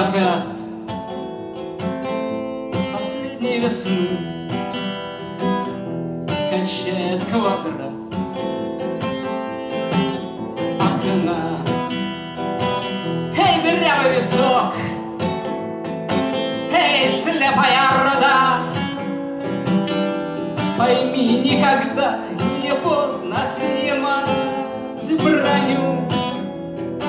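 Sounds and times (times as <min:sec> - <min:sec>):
wordless vocals: 0:00.0 - 0:00.9, 0:02.8 - 0:04.7, 0:06.4 - 0:08.3, 0:10.1 - 0:26.7
acoustic guitar strumming: 0:00.0 - 0:27.0.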